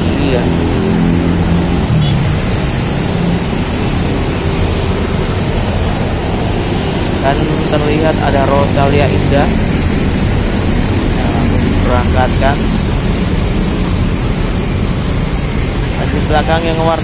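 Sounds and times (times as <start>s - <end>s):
person speaking: 0.0s - 0.9s, 7.2s - 9.7s, 11.2s - 12.7s
diesel coach engines idling: 0.0s - 17.0s.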